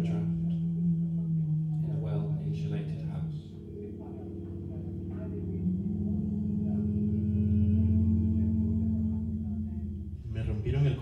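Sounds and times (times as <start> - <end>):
low ringing drone of held tones: 0.0 - 11.0.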